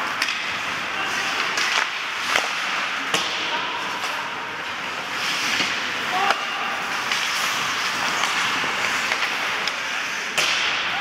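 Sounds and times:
puck crack: 0.0s - 11.0s
skates scraping on ice: 0.0s - 11.0s.

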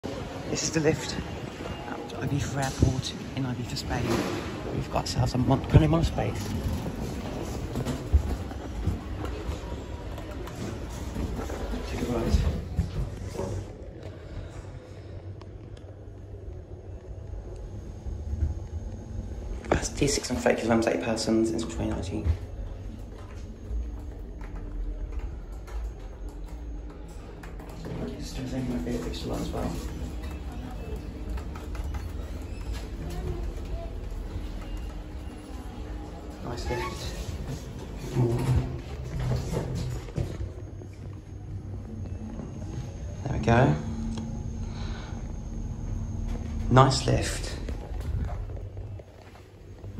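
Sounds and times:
lift hum: 6.3s - 49.9s.

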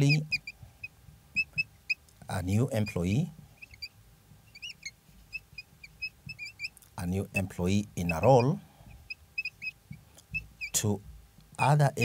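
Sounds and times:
marker squeaking on whiteboard: 0.0s - 0.5s, 4.6s - 6.8s, 7.4s - 8.6s, 9.4s - 10.8s.

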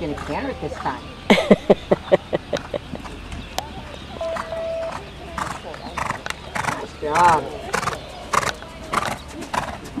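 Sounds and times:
horse hooves striking ground: 1.9s - 10.0s.

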